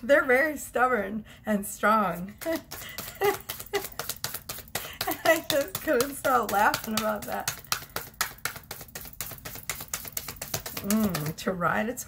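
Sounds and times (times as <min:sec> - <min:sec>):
cards shuffled by hand: 0:02.2 - 0:11.5.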